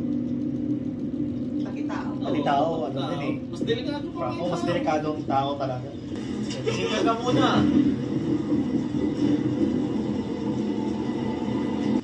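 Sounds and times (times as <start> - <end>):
steady low soundtrack rumble: 0.0 - 12.0.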